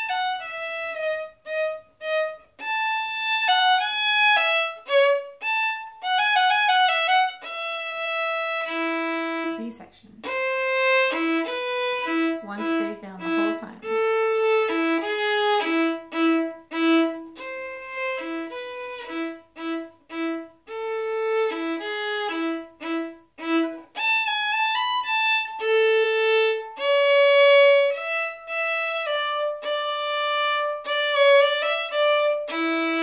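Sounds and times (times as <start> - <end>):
solo violin bowed: 0.0 - 33.0.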